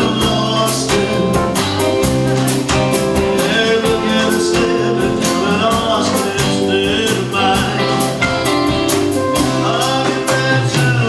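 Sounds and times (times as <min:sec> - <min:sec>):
country-rock band playing: 0:00.0 - 0:11.0.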